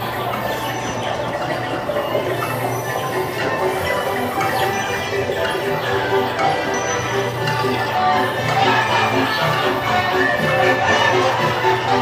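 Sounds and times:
background music: 0.0 - 12.0
ride vehicle humming on track: 0.0 - 12.0.

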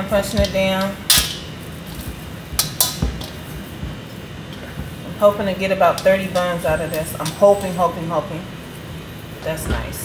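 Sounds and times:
dough rustling: 0.0 - 10.0.

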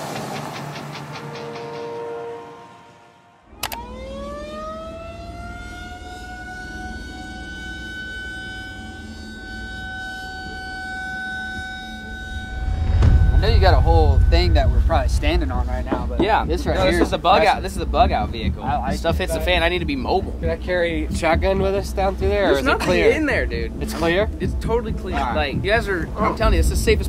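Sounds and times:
music: 0.0 - 3.4, 7.3 - 27.0
siren winding up: 3.5 - 13.3
click: 3.6 - 3.8
man talking: 13.4 - 27.0.

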